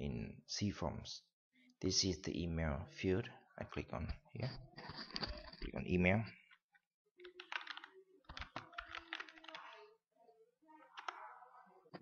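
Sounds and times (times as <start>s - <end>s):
computer keyboard typing: 7.2s - 9.9s, 11.0s - 11.2s.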